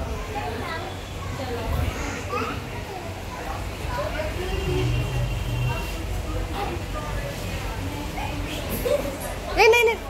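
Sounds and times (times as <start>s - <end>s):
background chatter of people: 0.0s - 10.0s.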